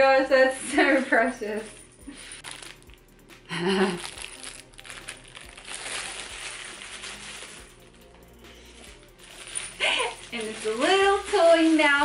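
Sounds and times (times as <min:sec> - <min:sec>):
tissue paper crinkling: 0:00.7 - 0:12.0
light metallic jingle: 0:08.9 - 0:12.0.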